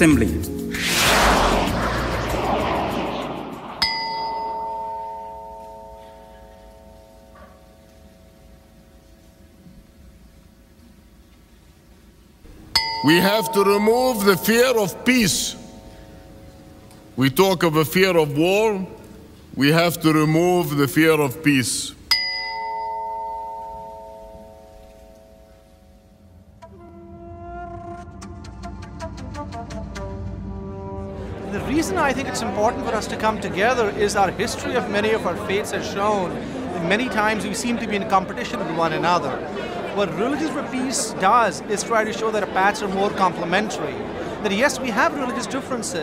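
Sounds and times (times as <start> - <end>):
plate chime ringing: 3.8 - 8.5, 12.7 - 16.9, 22.1 - 26.2
small bell ringing: 22.1 - 25.8.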